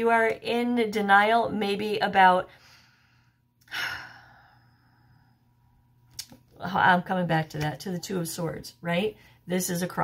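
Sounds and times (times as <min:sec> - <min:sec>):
woman sighing: 0:03.6 - 0:04.6.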